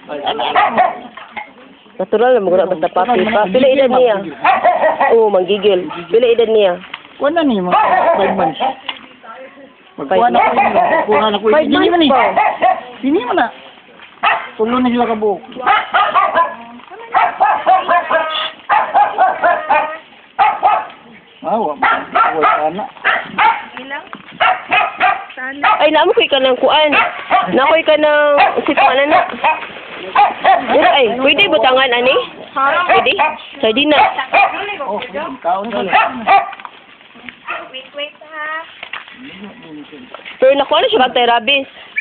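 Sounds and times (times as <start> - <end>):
dogs barking: 0.2 - 1.3, 3.4 - 6.4, 7.6 - 8.9, 10.1 - 13.4, 14.2 - 36.8, 37.4 - 37.8.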